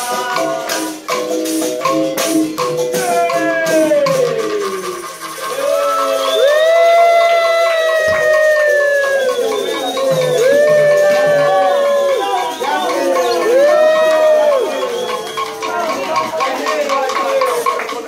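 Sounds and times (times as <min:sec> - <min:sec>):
percussion with shaken rattles: 0:00.0 - 0:18.0
voices singing sliding notes: 0:00.0 - 0:18.0.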